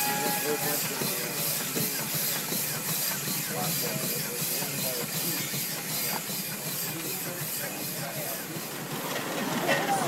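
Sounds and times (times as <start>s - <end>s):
steam hissing: 0.0s - 9.0s.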